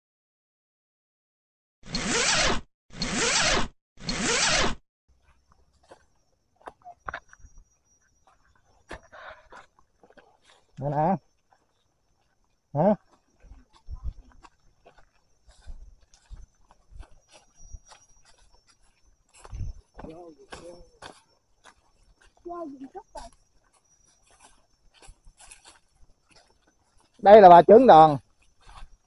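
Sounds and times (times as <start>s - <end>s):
footsteps on dry leaves: 9.4s - 10.8s, 11.4s - 27.5s, 28.1s - 29.0s.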